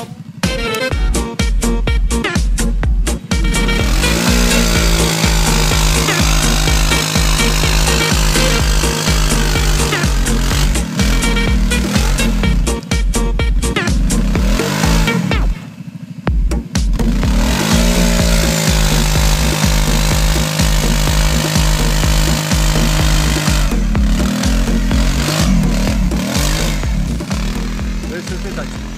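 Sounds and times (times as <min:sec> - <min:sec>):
quad bike engine revving: 0:00.0 - 0:28.9
wheels spinning throwing dirt: 0:03.0 - 0:28.9.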